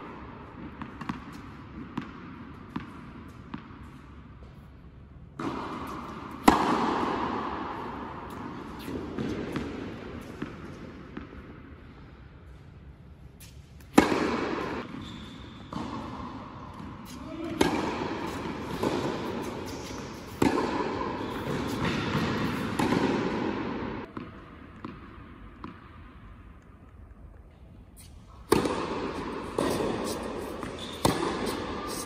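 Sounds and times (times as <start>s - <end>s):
tennis ball hits echoing: 5.4s - 11.4s, 13.8s - 15.0s, 15.7s - 25.9s, 28.5s - 32.0s.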